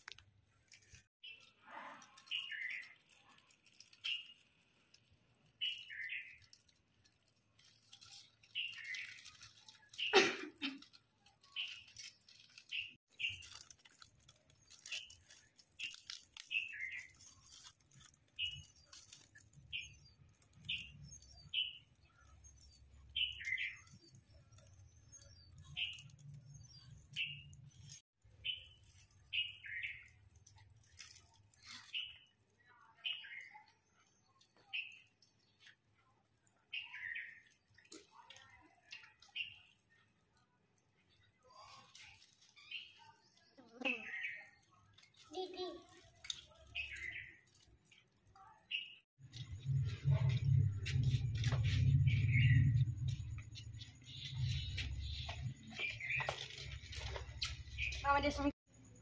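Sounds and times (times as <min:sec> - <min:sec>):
snack packets rustling: 0:00.0 - 0:32.6, 0:40.8 - 0:48.4, 0:53.3 - 0:58.3
bird chirping: 0:00.7 - 0:06.7, 0:07.6 - 0:35.8, 0:36.5 - 0:40.2, 0:41.0 - 0:59.0.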